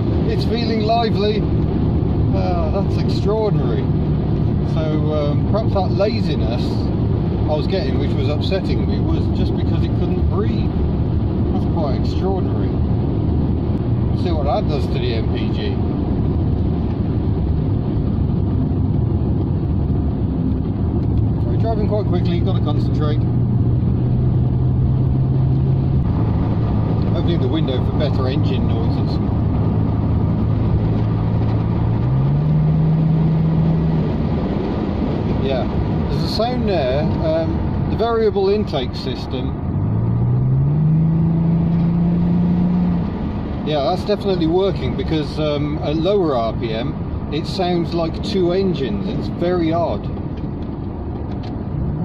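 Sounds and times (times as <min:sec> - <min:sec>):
car engine drone: 0:00.0 - 0:52.0
road noise: 0:00.0 - 0:52.0.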